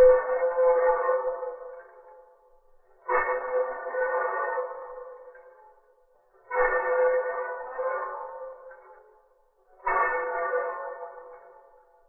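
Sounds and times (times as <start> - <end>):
ringing tone with overtones: 0.0 - 1.9.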